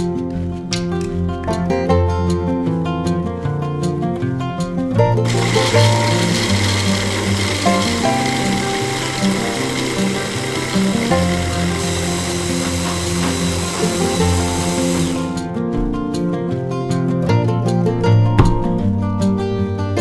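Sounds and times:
plucked guitar music: 0:00.0 - 0:20.0
hand blender motor whirring: 0:05.2 - 0:15.4.

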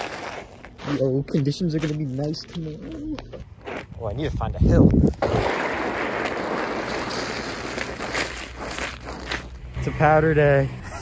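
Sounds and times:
slippers scuffing through wet slush: 0:05.8 - 0:09.6.

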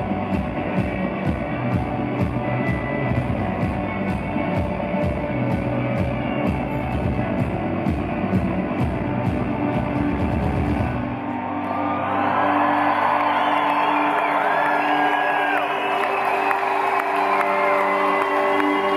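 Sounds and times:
live rock band playing: 0:00.0 - 0:11.2
crowd cheering and whooping: 0:10.6 - 0:18.9.

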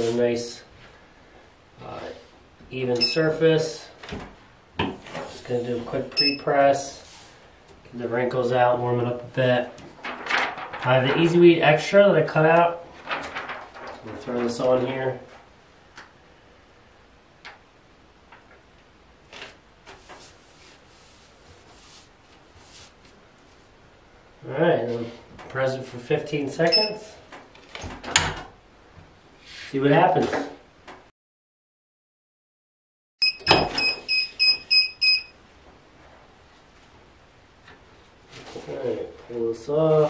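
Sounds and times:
timer beeping: 0:03.0 - 0:03.2, 0:06.2 - 0:06.4, 0:33.2 - 0:35.3
vinyl sheet rustling: 0:05.0 - 0:06.1, 0:09.6 - 0:15.6, 0:19.2 - 0:23.8, 0:35.7 - 0:40.0.

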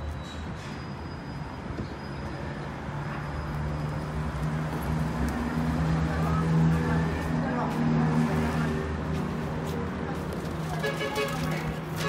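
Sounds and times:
faint voices: 0:05.6 - 0:12.0.

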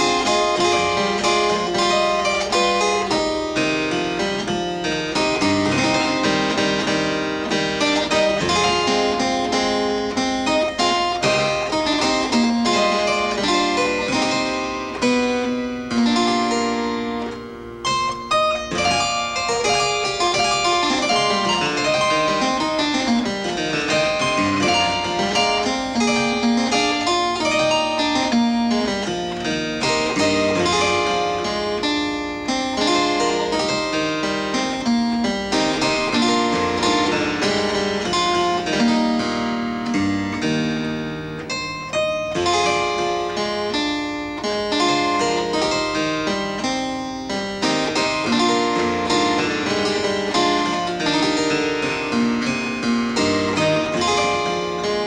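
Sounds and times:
harpsichord playing: 0:00.0 - 0:55.0.

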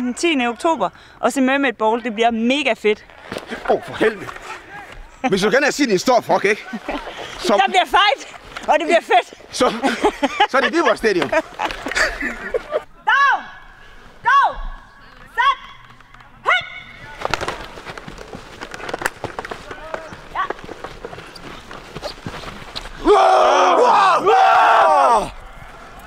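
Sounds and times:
players shouting calls: 0:00.0 - 0:01.5, 0:03.3 - 0:05.3, 0:10.6 - 0:21.4, 0:22.8 - 0:26.0
padded players colliding: 0:03.2 - 0:05.1, 0:16.6 - 0:23.1
players yelling together: 0:23.0 - 0:25.5.

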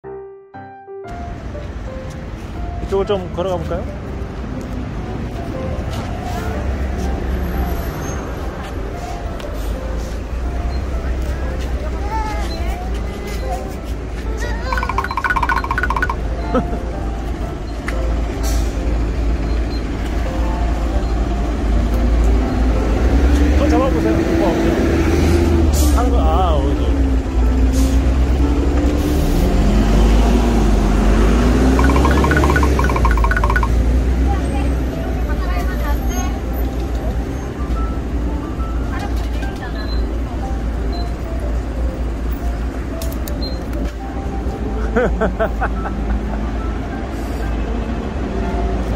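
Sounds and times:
bus engine rumble: 0:16.5 - 0:31.6.

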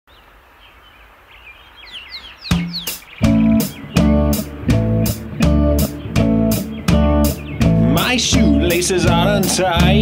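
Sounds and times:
high falling chirps: 0:01.9 - 0:10.0
rock band playing: 0:02.5 - 0:10.0.

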